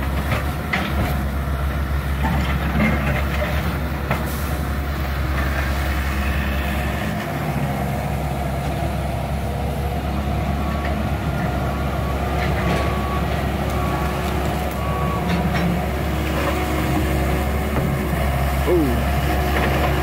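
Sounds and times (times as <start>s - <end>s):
excavator diesel engine running: 0.0s - 20.0s.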